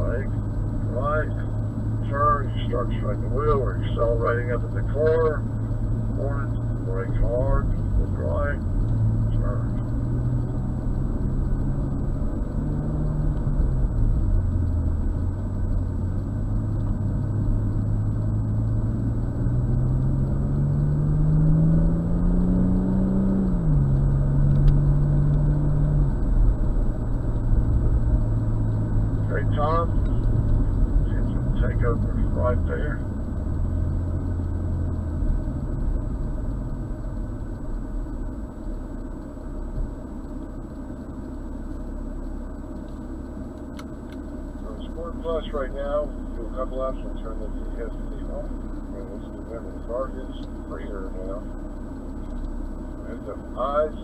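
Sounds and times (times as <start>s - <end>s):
car engine accelerating: 0.0s - 54.0s.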